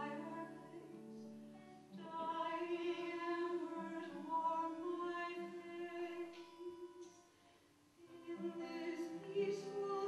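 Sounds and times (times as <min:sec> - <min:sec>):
woman singing long notes: 0:08.0 - 0:10.0.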